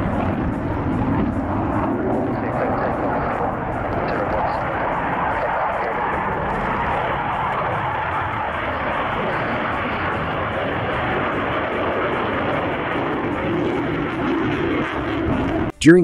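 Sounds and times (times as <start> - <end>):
jet flying past in afterburner: 0.0 - 15.8.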